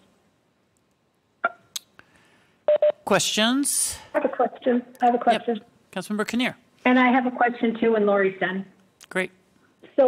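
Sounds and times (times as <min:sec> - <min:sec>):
click: 0:00.8 - 0:01.0.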